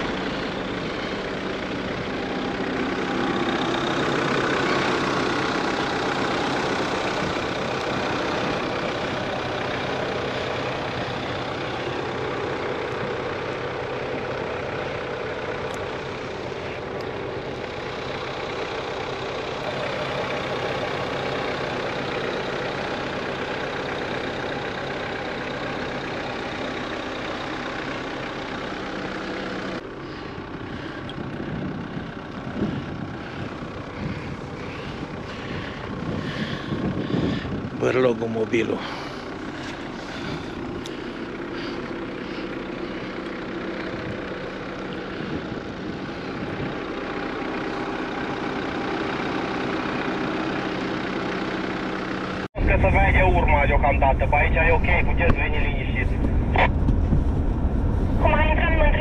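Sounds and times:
suv engine idling: 0:00.0 - 0:59.0.

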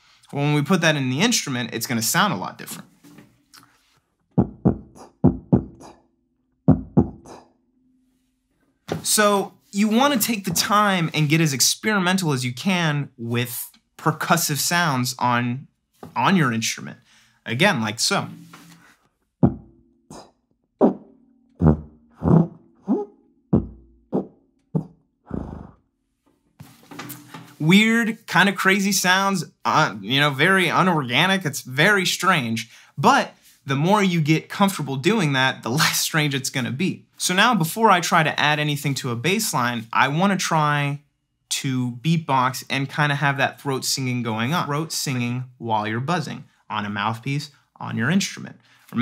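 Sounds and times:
beatboxed sousaphone hits: 0:04.4 - 0:06.0, 0:06.7 - 0:07.4, 0:18.2 - 0:23.0
beatboxing through sousaphone: 0:04.4 - 0:06.0, 0:06.7 - 0:07.5.

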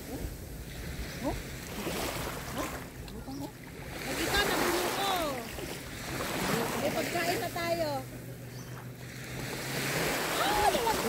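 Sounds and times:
small waves washing on shore: 0:00.0 - 0:11.0.

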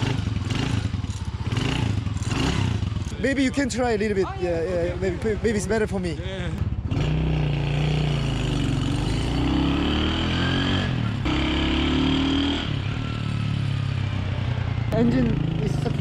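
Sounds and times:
motorcycle engine accelerating: 0:00.0 - 0:03.6, 0:04.8 - 0:16.0.

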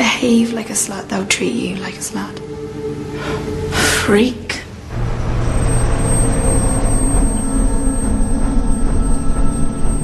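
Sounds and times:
low rumbling drone: 0:02.6 - 0:10.0
faint high whine: 0:04.9 - 0:10.0.

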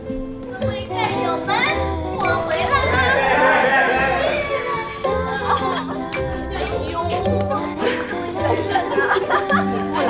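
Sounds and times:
light background music: 0:00.0 - 0:10.0
people cheering and shouting: 0:02.2 - 0:07.2.

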